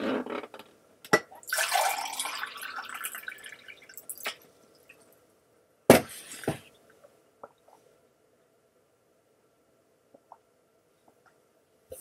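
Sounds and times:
water pouring into a glass: 1.4 - 4.9.

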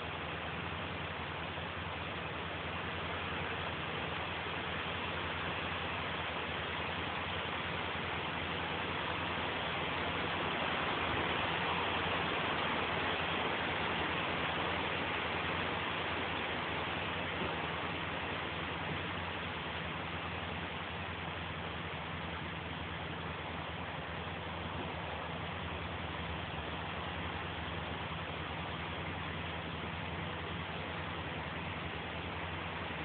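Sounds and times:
engine running steadily: 0.0 - 33.0.

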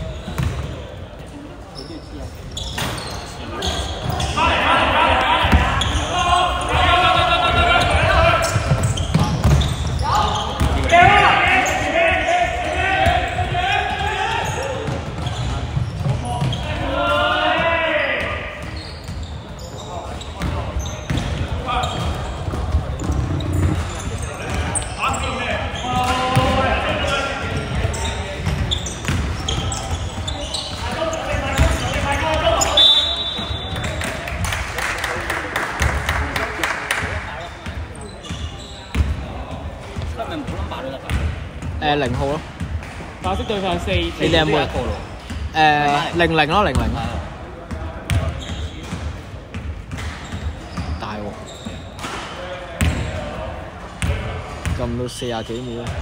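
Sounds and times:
voices calling out in hall: 0.0 - 56.0
basketball bouncing: 21.1 - 24.7.

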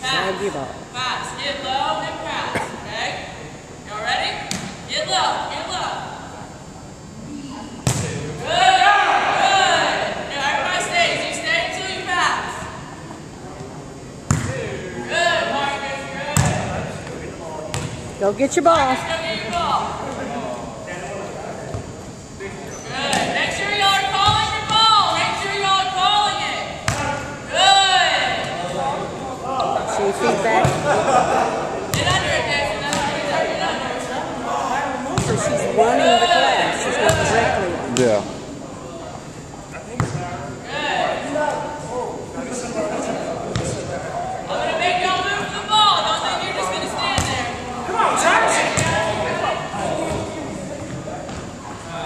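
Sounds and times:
indistinct chatter of voices: 0.0 - 52.0
volleyball thuds in a hall: 0.0 - 52.0
volleyball smack: 7.8 - 8.2.

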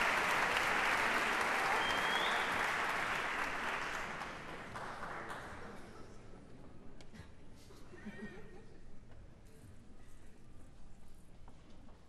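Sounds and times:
audience applause: 0.0 - 5.5.

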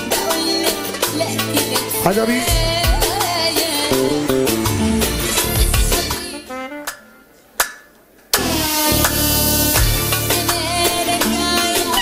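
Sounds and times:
loud music with strong bass: 1.8 - 6.3, 8.4 - 12.0.

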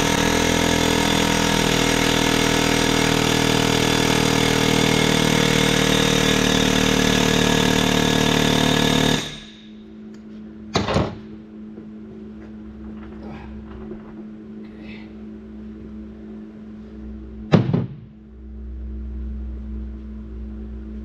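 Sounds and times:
pneumatic air hammer: 0.0 - 9.8.

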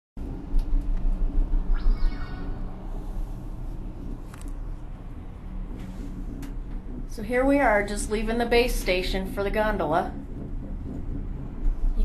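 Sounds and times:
gondola cabin low rumble: 0.2 - 12.0.

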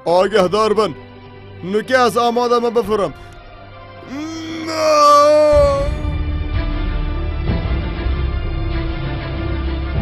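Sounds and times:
film music: 0.0 - 9.3
higher cry: 4.0 - 6.2
man yelling: 4.0 - 6.2.

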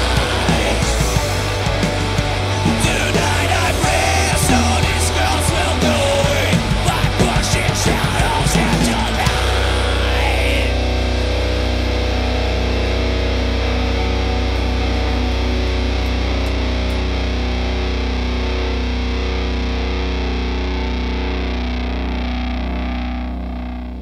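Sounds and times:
distorted electric guitar chord: 0.0 - 24.0.

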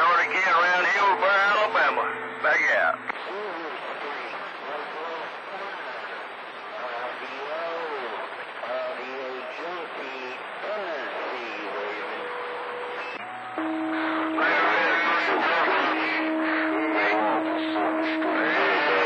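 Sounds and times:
muffled voice on radio: 0.0 - 12.2, 14.4 - 19.0
radio static: 0.0 - 19.0.

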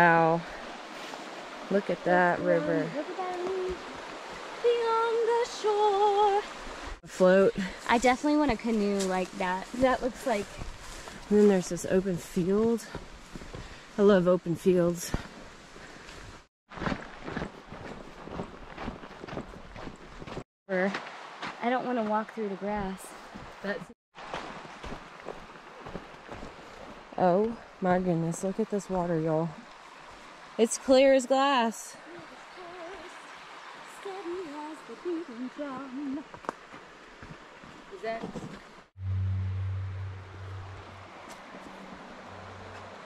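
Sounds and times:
woman's wordless voice: 0.0 - 0.5, 1.7 - 3.9, 4.6 - 13.0, 14.0 - 15.3, 20.7 - 21.0, 21.6 - 24.0, 27.2 - 29.6, 30.6 - 33.2, 33.9 - 36.3
creek flowing: 0.0 - 43.0
footsteps through grass: 15.2 - 21.6.

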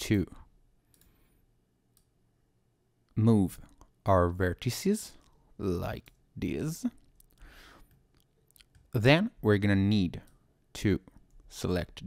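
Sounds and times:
low background hum: 0.0 - 12.0
computer mouse clicks: 0.9 - 1.2.

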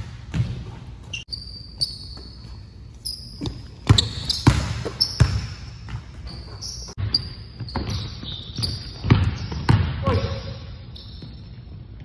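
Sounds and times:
basketball bouncing on wooden floor: 0.0 - 1.2, 3.3 - 10.4.

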